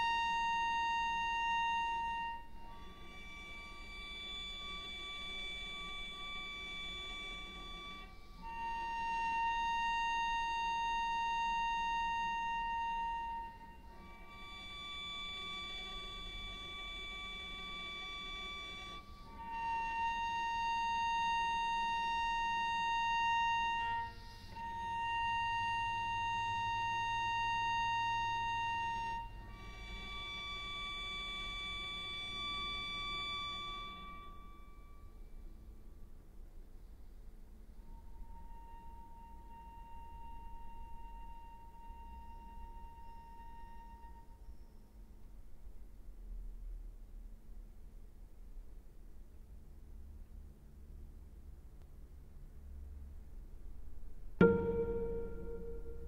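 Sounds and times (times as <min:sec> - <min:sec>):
cello bowing sustained notes: 0:00.0 - 0:35.6, 0:37.6 - 0:44.9, 0:54.0 - 0:56.0.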